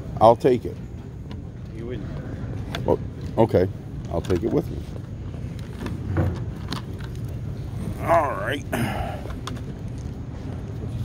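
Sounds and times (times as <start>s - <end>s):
steady low hum: 0.0s - 11.0s
man saying oh: 8.0s - 9.1s.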